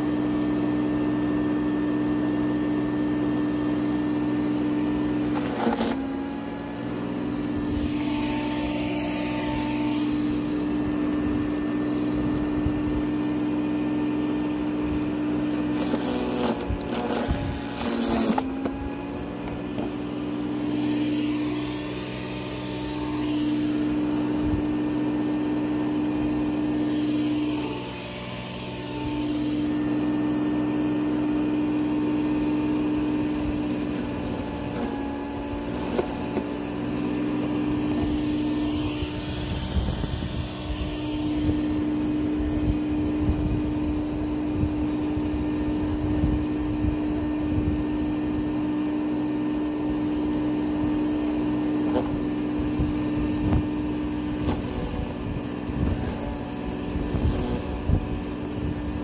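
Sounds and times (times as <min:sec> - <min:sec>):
electric mulcher motor whine: 0:00.0 - 0:59.0.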